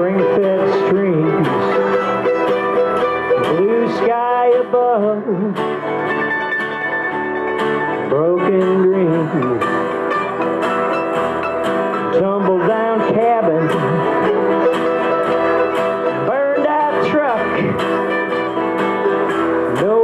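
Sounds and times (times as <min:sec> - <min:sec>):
acoustic guitar: 0:00.0 - 0:20.0
bass guitar: 0:00.0 - 0:20.0
mandolin: 0:00.0 - 0:20.0.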